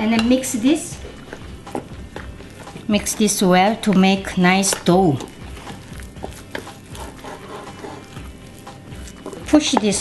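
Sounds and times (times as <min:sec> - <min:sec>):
plastic scoop stirring in bowl: 0:01.1 - 0:10.0.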